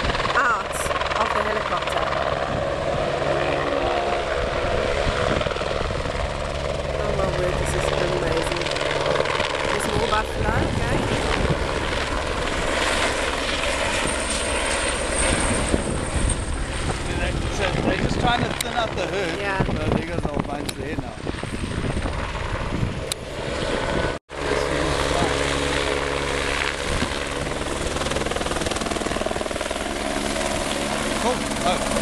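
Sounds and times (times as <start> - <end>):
helicopter in flight: 0.0 - 32.0.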